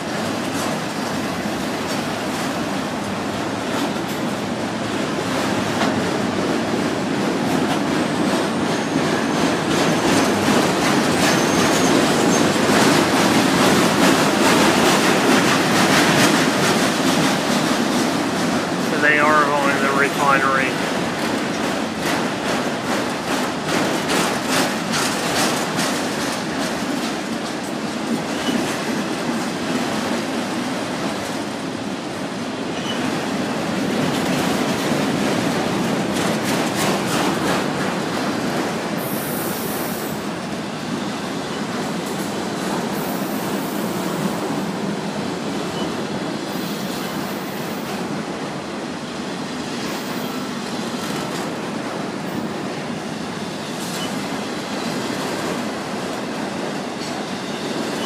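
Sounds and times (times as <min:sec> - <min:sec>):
train wheels on rail: 0:00.0 - 0:58.0
rapid clicking of wheels on rail joints: 0:00.1 - 0:18.9, 0:20.7 - 0:31.6, 0:32.6 - 0:48.2.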